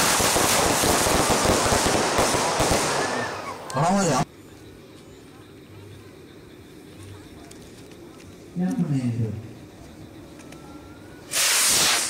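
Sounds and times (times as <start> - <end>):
firework crackling: 0.0 - 4.2, 11.2 - 12.0.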